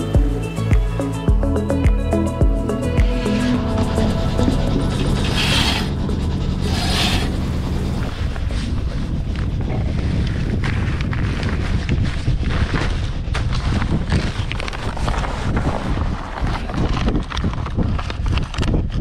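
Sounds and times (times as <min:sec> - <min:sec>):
low steady hum: 0:02.6 - 0:10.2
wind buffeting microphone: 0:03.0 - 0:19.0.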